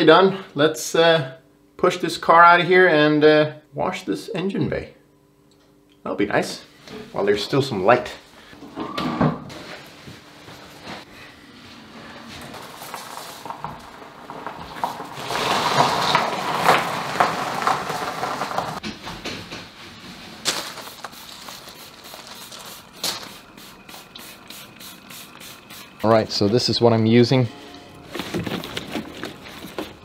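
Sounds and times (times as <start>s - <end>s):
tyres crunching on gravel: 12.2s - 18.8s.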